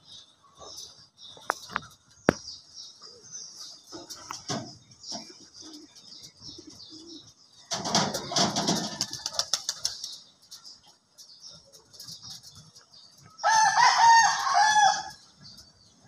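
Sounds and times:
pigeon wings flapping: 7.8s - 10.2s.

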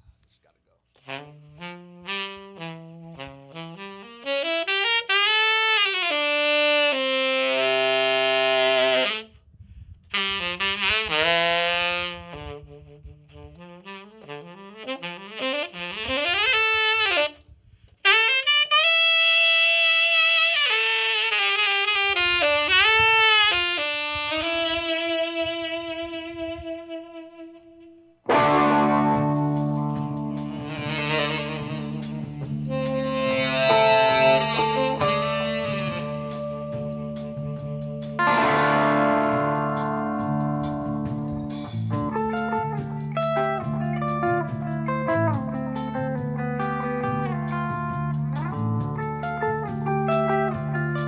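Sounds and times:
tenor saxophone melody: 1.0s - 9.4s, 10.1s - 17.4s, 18.0s - 48.0s, 49.6s - 51.0s
fuller lower sound: 7.0s - 10.6s, 24.2s - 51.0s.

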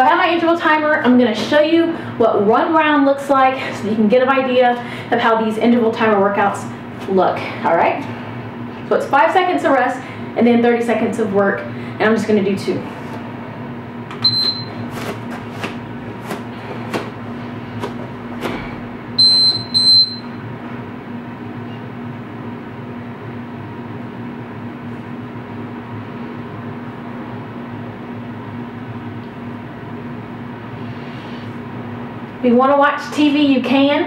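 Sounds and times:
steady low hum: 0.0s - 34.0s
electronic timer beeps: 14.2s - 14.8s, 19.2s - 20.4s.

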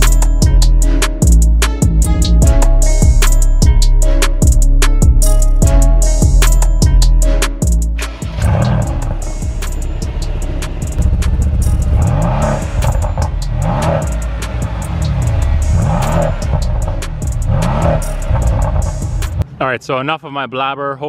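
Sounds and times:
background music with a beat: 0.0s - 19.4s
car engine revving: 7.2s - 19.4s.

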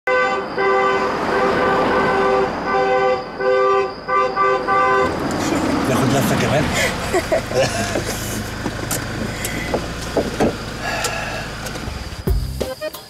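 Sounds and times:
car horn honking: 0.1s - 6.6s.

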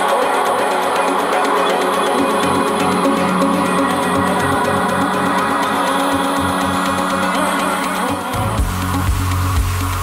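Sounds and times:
loud dance music: 0.0s - 10.0s.

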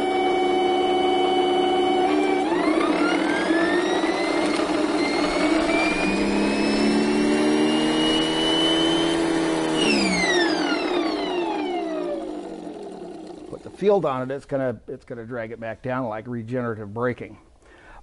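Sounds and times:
electric motor whining: 0.0s - 13.8s.

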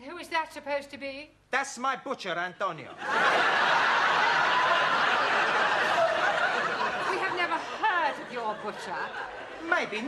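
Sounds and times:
studio audience laughing: 2.9s - 10.0s.

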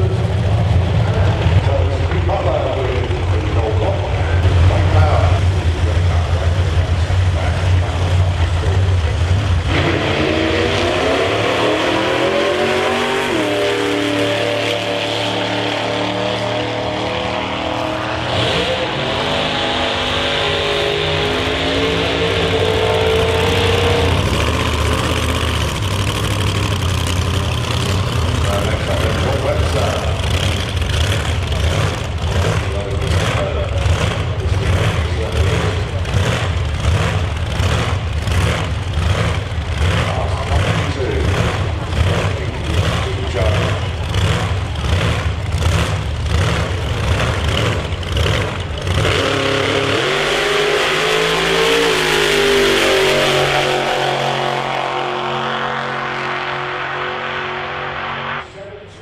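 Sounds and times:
drag car engine revving: 0.0s - 59.0s
engine rough pulsing idle: 23.2s - 49.0s.

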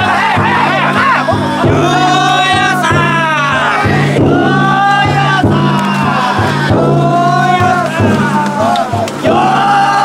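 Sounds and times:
crowd chanting and shouting: 0.0s - 10.0s
taiko drum beating: 0.0s - 10.0s.

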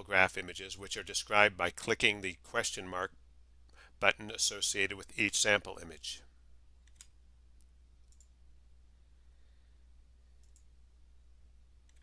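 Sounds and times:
low steady hum: 0.0s - 12.0s
computer mouse clicks: 6.8s - 8.4s, 10.4s - 10.7s.

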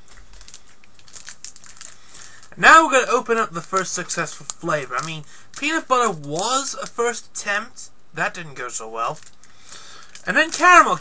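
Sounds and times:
plastic wrapper crinkling: 0.0s - 7.0s, 9.1s - 11.0s.

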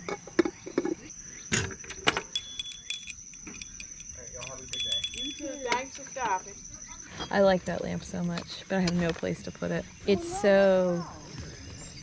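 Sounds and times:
high insect drone: 0.3s - 12.0s
bright metallic jingle: 2.4s - 6.4s.

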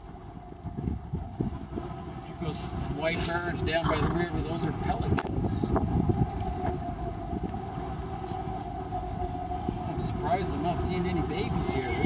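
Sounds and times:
vehicle rumbling over rough ground: 0.0s - 12.0s.

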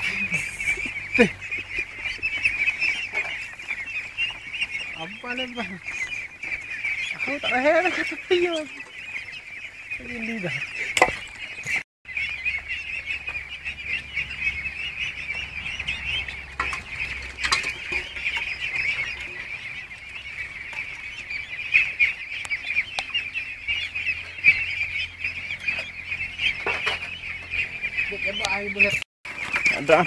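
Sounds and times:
ducklings peeping: 0.0s - 30.0s.

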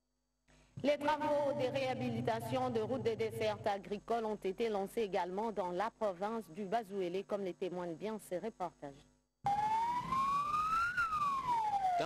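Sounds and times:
vehicle siren wailing: 9.5s - 12.0s.

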